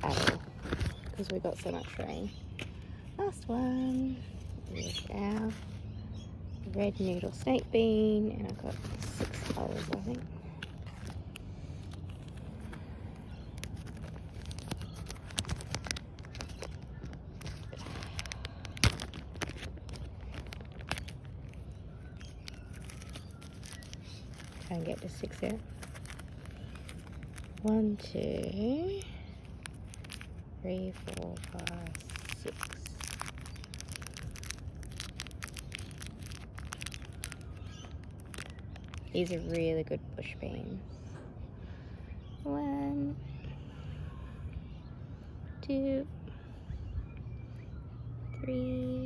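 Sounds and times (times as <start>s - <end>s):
plastic bag crinkling: 0.0s - 2.3s, 8.3s - 39.7s
low steady rumble: 0.0s - 49.0s
compost rustling: 6.7s - 39.8s.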